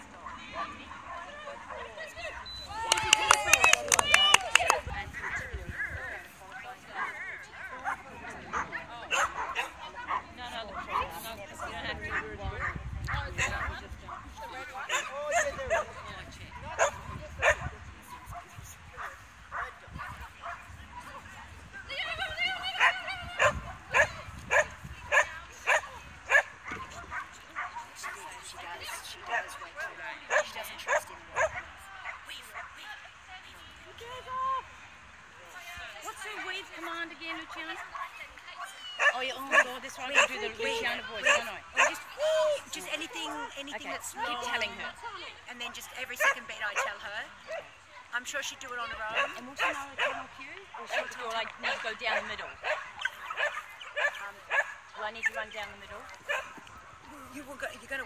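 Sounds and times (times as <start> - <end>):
dogs barking and yipping: 7.0 - 11.1, 22.7 - 28.3, 38.8 - 42.1, 49.1 - 55.4, 56.1 - 56.9.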